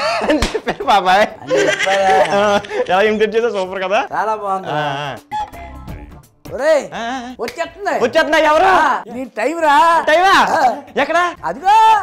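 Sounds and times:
man laughing loudly: 0.0 - 3.1.

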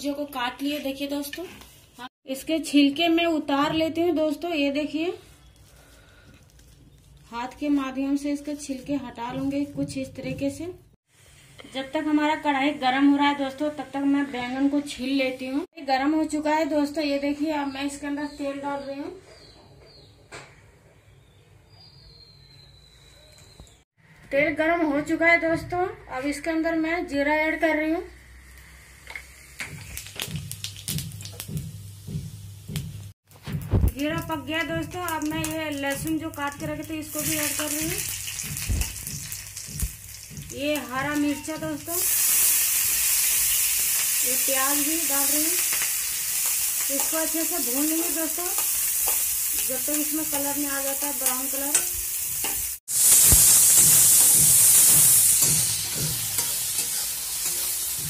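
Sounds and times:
seeds crackling in hot oil: 28.0 - 58.0
metal spatula scraping: 48.0 - 58.0.

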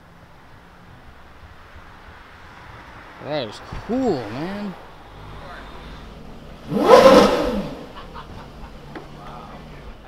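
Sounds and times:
car passing by revving: 2.0 - 10.0.

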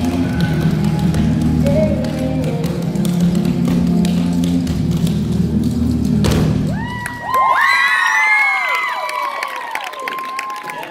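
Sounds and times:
recorded dance music: 0.0 - 7.1
loud stomp: 6.2 - 6.9
audience cheering and whooping: 6.6 - 10.9.

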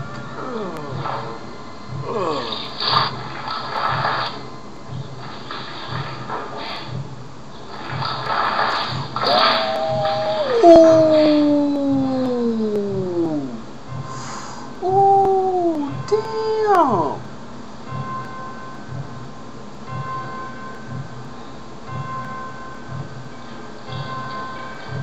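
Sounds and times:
man groaning: 0.4 - 1.2, 2.1 - 2.6, 9.3 - 13.6.

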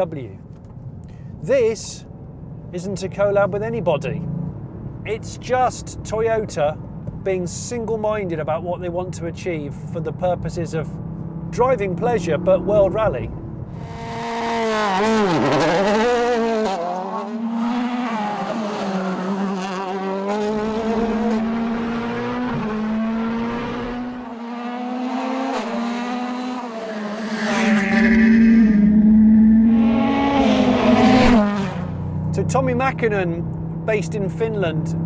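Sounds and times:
rally car engine revving: 11.0 - 32.8.

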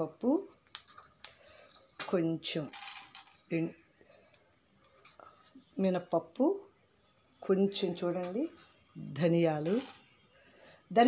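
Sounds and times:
seeds rattling into frying pan: 9.6 - 10.1.

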